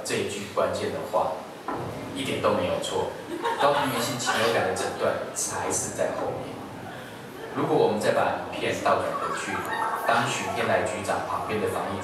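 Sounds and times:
man talking through speakers: 7.6 - 12.0.

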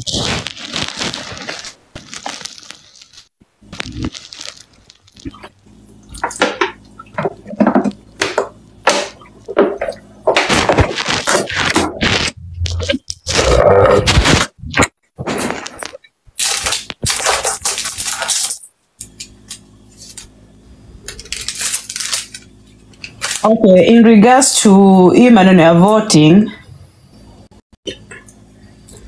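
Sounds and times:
faint steady hum: 0.0 - 29.0.

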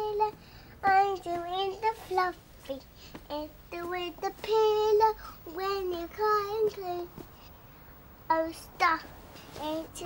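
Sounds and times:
child singing: 0.0 - 7.2, 8.3 - 10.0.

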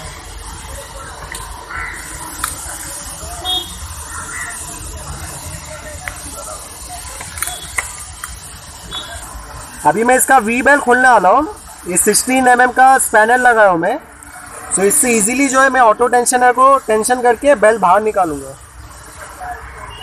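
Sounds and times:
faint voices: 0.0 - 20.0
workshop background noise: 0.0 - 20.0.

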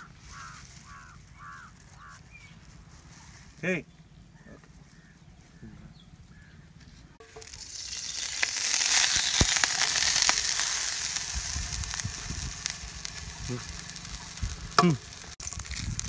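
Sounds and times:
oil popping: 7.2 - 16.0
oil sizzling in frying pan: 7.2 - 16.0.

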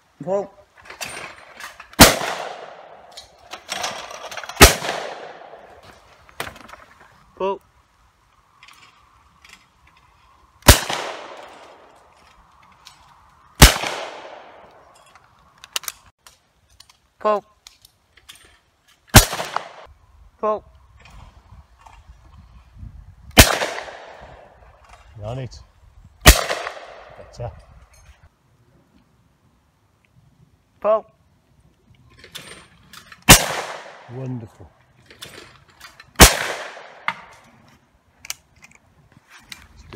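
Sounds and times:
shotgun shots with echo: 2.0 - 3.0, 4.6 - 5.6, 10.7 - 11.5, 13.6 - 14.6, 19.2 - 19.9, 23.4 - 24.2, 26.2 - 27.2, 33.3 - 34.1, 36.2 - 37.1.

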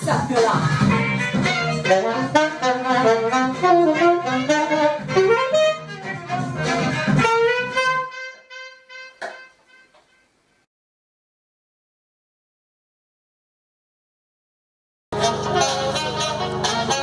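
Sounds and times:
backing track with bass and drums: 0.0 - 7.9, 15.2 - 17.0
saxophone melody: 0.7 - 10.4, 15.1 - 17.0.

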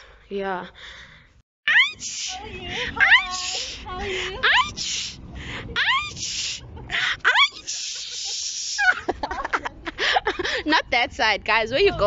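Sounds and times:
person making rising squeals: 1.7 - 5.2, 5.8 - 9.1.

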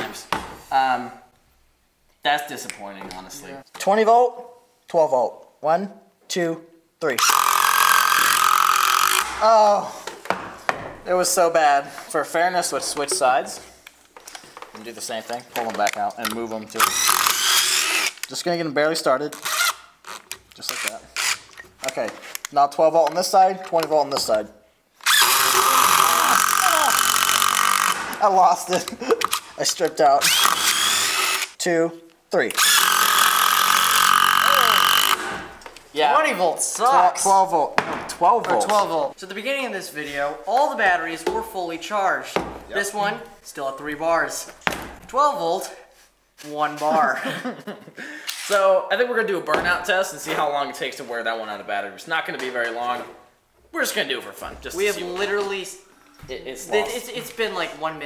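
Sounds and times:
impact drivers driving screws: 7.2 - 9.4, 16.7 - 18.3, 19.4 - 21.7, 25.0 - 28.2, 30.2 - 31.6, 32.5 - 35.5.

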